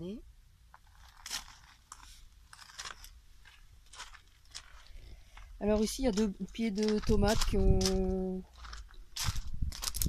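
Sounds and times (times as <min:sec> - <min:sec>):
footsteps on gravel: 0:00.8 - 0:10.0.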